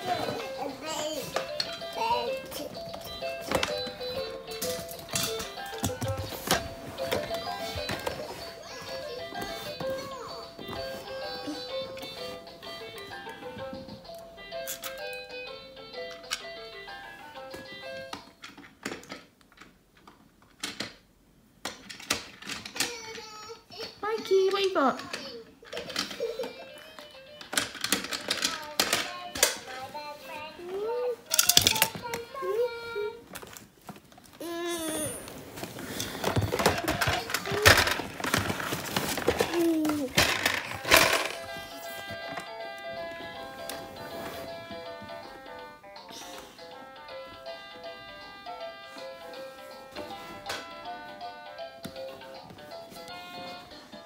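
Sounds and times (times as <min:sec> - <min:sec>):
toddler vocalising: 0:34.4 - 0:35.3.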